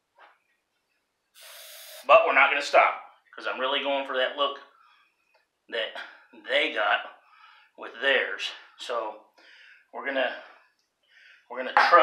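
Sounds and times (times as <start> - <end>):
man drawing sharp breath: 1.4 - 2.0, 9.4 - 9.9, 10.5 - 11.5.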